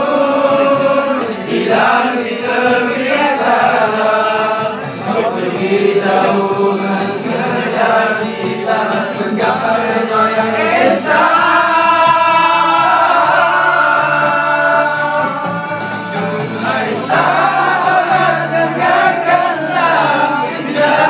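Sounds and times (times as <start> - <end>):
group of men singing unaccompanied: 0.0 - 21.0.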